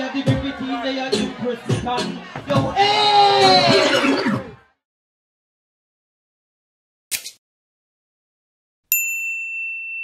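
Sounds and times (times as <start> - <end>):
bell-like ding: 8.9 - 10.0.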